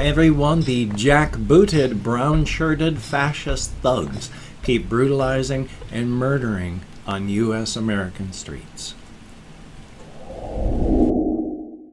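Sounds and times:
rain hiss: 0:03.1 - 0:10.5
thunder rumble: 0:10.0 - 0:11.9.

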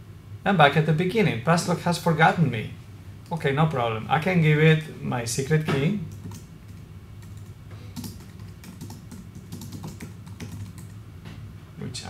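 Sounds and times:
typing on computer keyboard: 0:06.1 - 0:11.0.

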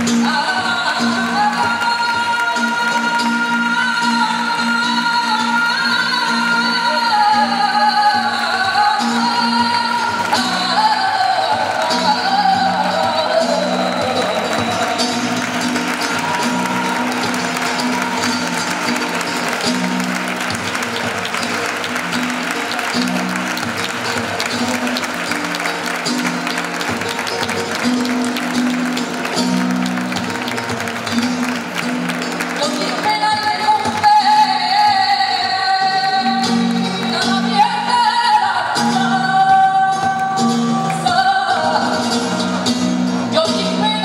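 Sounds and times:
audience clapping: 0:00.0 - 0:44.0
flamenco guitar: 0:00.0 - 0:44.0
person singing flamenco: 0:00.0 - 0:44.0.

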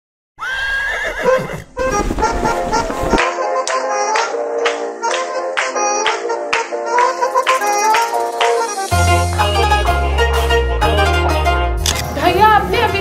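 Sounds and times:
instrumental music with plucked notes: 0:02.5 - 0:13.0.

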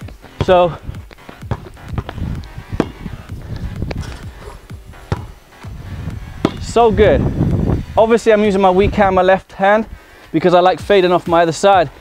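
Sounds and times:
basketball bouncing: 0:00.0 - 0:06.9
sneakers stepping on stone: 0:00.0 - 0:07.7
background music: 0:00.0 - 0:12.0
sharp knocks: 0:06.4 - 0:06.7.

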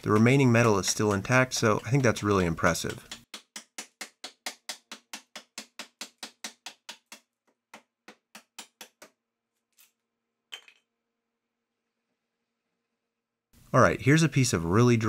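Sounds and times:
hatchet chopping into wood: 0:00.0 - 0:09.2.

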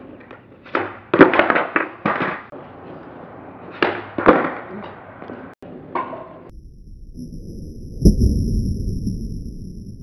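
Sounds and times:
skateboard clattering on concrete: 0:00.0 - 0:02.5, 0:03.7 - 0:04.8.

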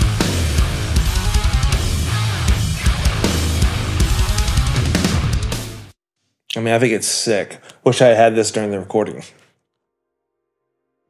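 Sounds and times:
distorted guitars: 0:00.0 - 0:06.0
heavy metal music: 0:00.0 - 0:06.0.

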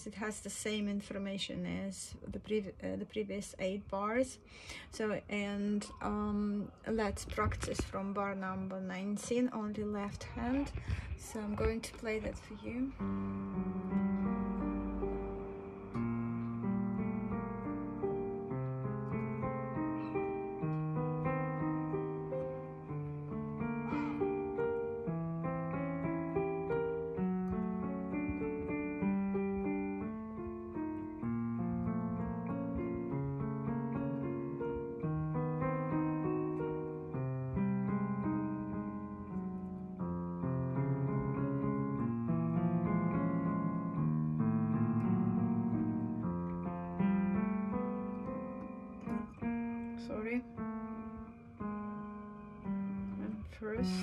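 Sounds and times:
piano playing low notes: 0:00.0 - 0:54.0.

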